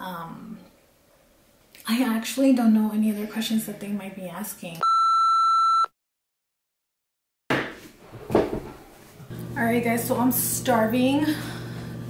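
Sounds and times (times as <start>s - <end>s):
electronic beep: 4.8s - 5.9s.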